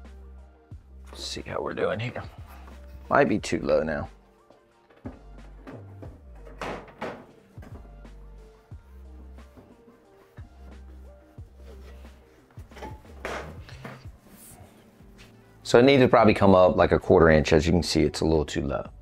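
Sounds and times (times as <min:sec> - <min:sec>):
background music with bass line: 0:00.0 - 0:19.0
metal lid knocks and thuds: 0:05.0 - 0:07.9, 0:12.7 - 0:14.0.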